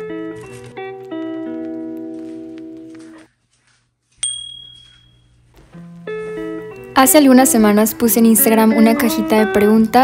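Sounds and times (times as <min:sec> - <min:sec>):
bright bell-like ding: 0:04.2 - 0:05.3
background music chord: 0:05.6 - 0:10.0.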